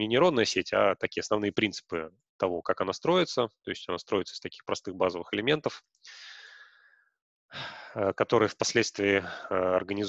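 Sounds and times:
man speaking: 0:00.0 - 0:06.3, 0:07.9 - 0:10.0
man sighing breath: 0:06.1 - 0:06.9, 0:07.5 - 0:08.0.

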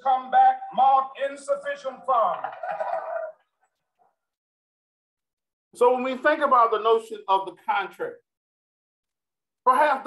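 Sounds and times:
man's voice with reverberation: 0:00.0 - 0:02.5, 0:05.8 - 0:08.2.

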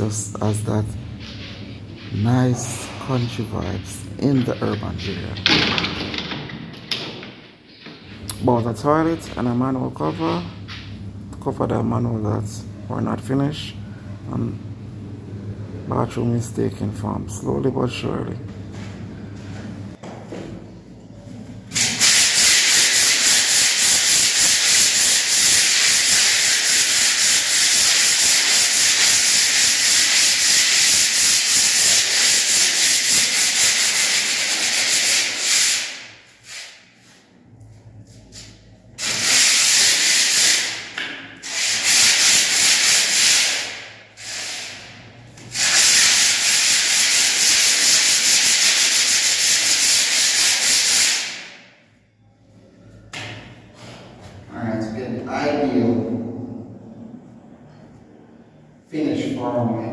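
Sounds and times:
sanding block rasping on plaster: 0:21.9 - 0:36.8, 0:45.6 - 0:51.3.

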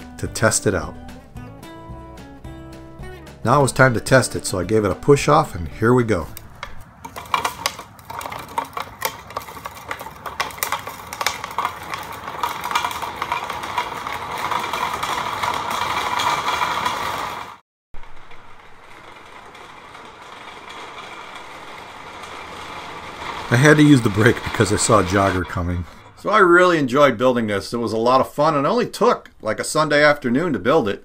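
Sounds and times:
plastic wheels rolling on asphalt: 0:00.0 - 0:31.0
clicking rattle: 0:03.7 - 0:26.4.

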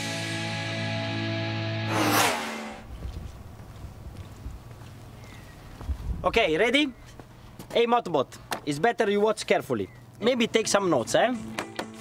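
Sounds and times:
loud rushing sound: 0:01.8 - 0:03.0
wind: 0:01.8 - 0:12.0
background music: 0:10.6 - 0:12.0.

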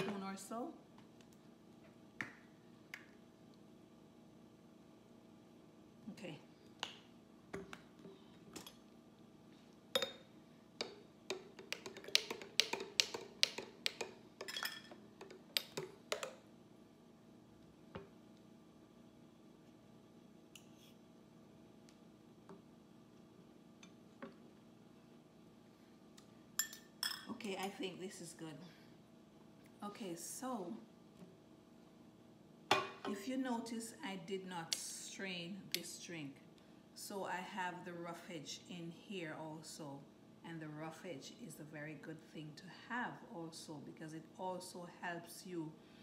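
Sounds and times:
metal spoon clinking on glass: 0:14.4 - 0:15.0.

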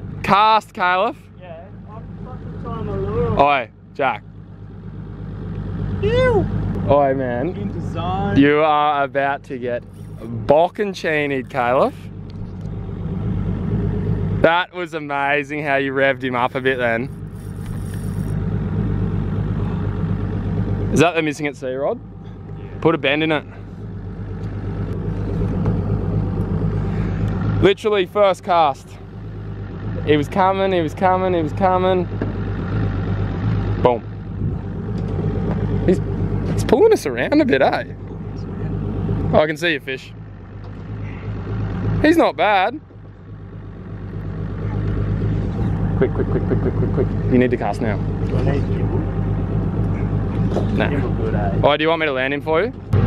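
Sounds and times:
boat engine idling: 0:00.0 - 0:53.0.

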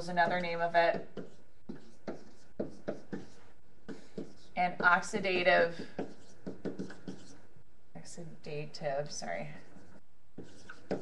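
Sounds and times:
writing scratching on a surface: 0:00.2 - 0:05.2, 0:05.8 - 0:07.4, 0:09.6 - 0:11.0
light taps of writing: 0:00.9 - 0:04.5, 0:05.9 - 0:07.3.

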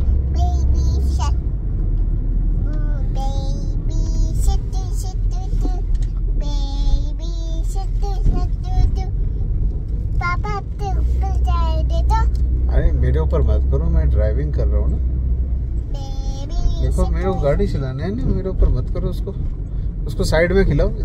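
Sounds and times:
car cabin rumble: 0:00.0 - 0:21.0
girl singing and chattering: 0:00.3 - 0:01.4, 0:02.7 - 0:09.2, 0:10.2 - 0:12.4, 0:15.9 - 0:17.6.

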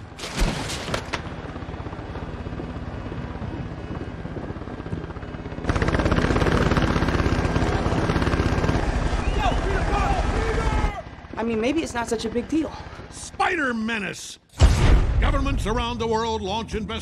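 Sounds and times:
helicopter rotors chopping: 0:00.0 - 0:14.4.

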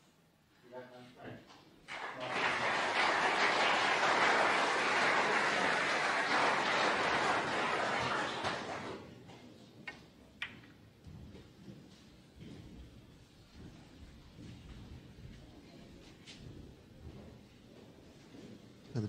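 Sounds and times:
snooker balls clicking: 0:09.8 - 0:10.8.

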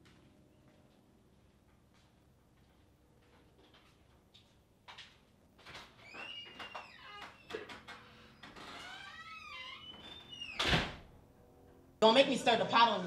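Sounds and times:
faint squeaks: 0:05.9 - 0:10.7.

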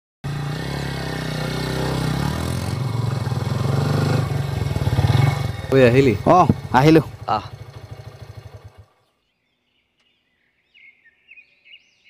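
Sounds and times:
motorcycle engine: 0:00.2 - 0:09.2.

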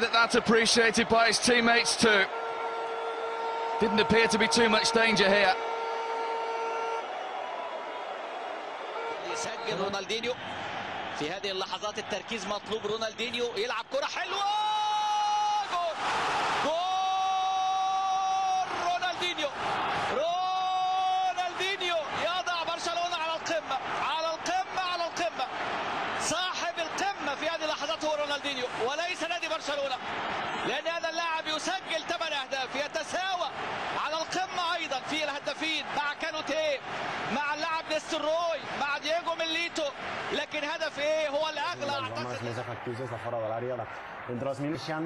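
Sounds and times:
excited commentary: 0:00.0 - 0:02.3, 0:03.8 - 0:05.6, 0:09.2 - 0:10.4, 0:11.1 - 0:45.0
commentator shouting: 0:03.8 - 0:05.5.

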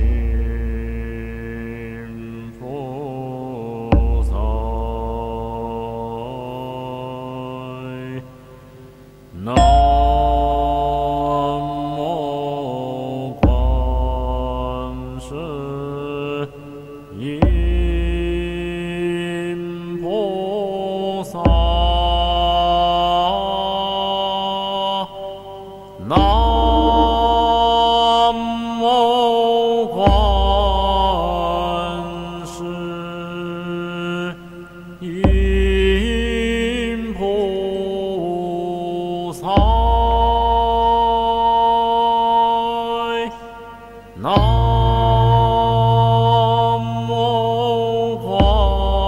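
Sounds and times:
low sustained accompaniment: 0:09.6 - 0:15.8, 0:26.0 - 0:28.8, 0:44.2 - 0:49.0
person chanting long phrases: 0:26.1 - 0:27.9.

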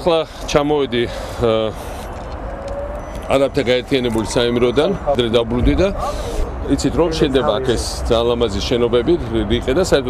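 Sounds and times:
man speaking: 0:00.0 - 0:01.8, 0:03.3 - 0:10.0
distant city traffic rumble: 0:00.0 - 0:10.0.

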